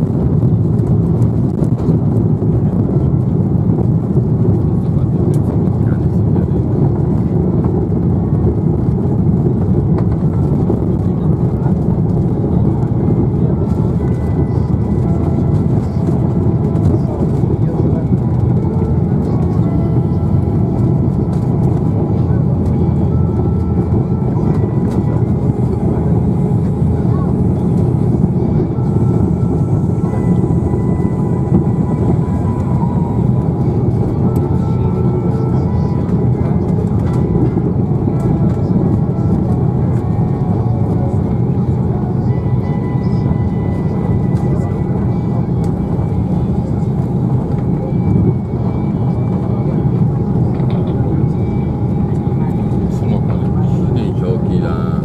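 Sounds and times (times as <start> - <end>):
jet cabin engine rumble: 0.0 - 55.0.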